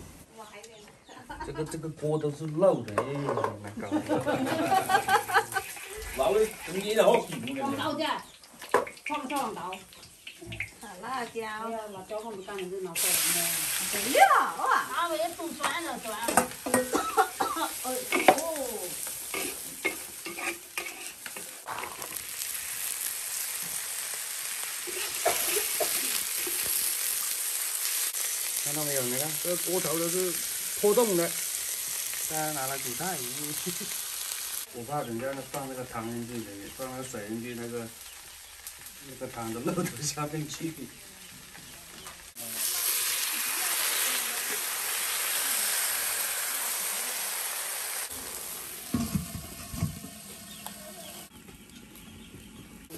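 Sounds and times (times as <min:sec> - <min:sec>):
frying sizzle: 0:03.9 - 0:52.9
metal spatula scraping wok: 0:05.6 - 0:07.4, 0:17.8 - 0:18.4, 0:19.0 - 0:22.2, 0:24.8 - 0:26.7.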